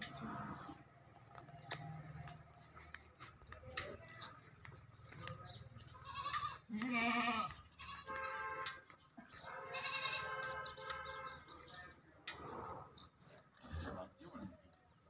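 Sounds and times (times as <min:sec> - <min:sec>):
young farm animal bleating: 0:05.9 - 0:08.4, 0:09.6 - 0:10.5
high bird chirps: 0:09.2 - 0:11.8.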